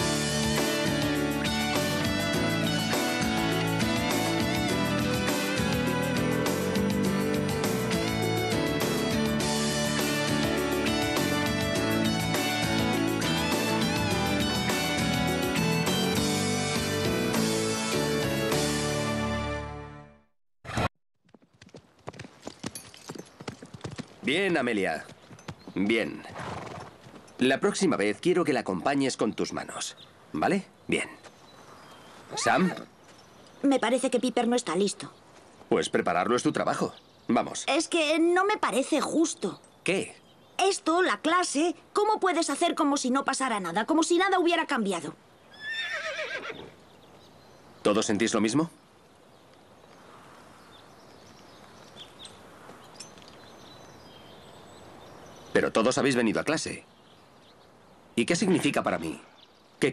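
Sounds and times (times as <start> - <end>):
theme music: 0.0 - 20.3
horse hooves clip-clopping on sand: 21.2 - 27.8, 49.5 - 54.8
horse whinnying: 26.3 - 26.9, 45.5 - 46.8.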